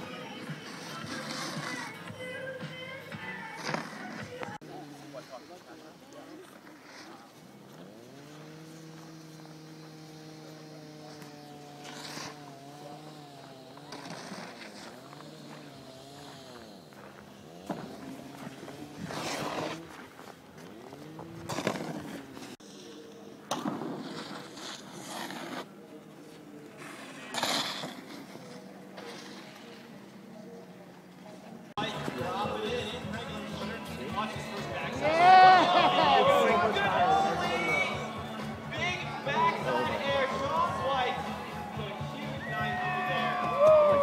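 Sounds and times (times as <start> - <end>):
snowboard edges scraping: 0.0 - 30.0.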